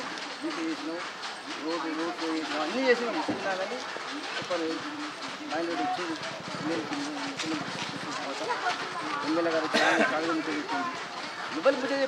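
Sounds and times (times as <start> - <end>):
outdoor background noise: 0.0 - 12.0
man speaking: 11.5 - 12.0.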